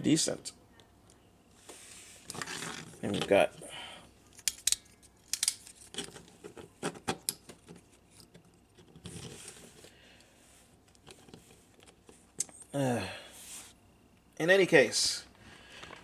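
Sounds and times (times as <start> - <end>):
soft rustle: 13.3 - 13.8.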